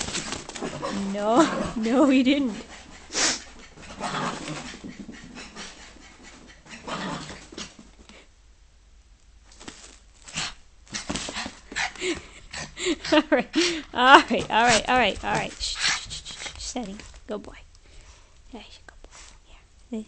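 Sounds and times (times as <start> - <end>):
dog panting: 0.0 - 8.2, 10.9 - 17.2.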